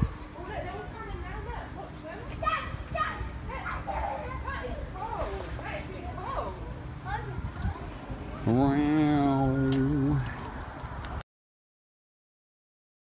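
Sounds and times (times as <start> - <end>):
chatter of children and adults: 0.0 - 10.5.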